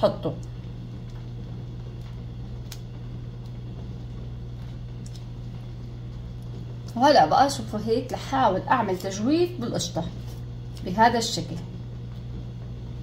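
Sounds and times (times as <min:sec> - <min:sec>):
low background hum: 0:00.0 - 0:13.0.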